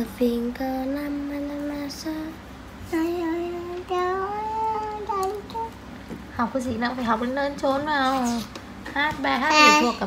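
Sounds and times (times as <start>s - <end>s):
child singing: 0.0s - 5.8s.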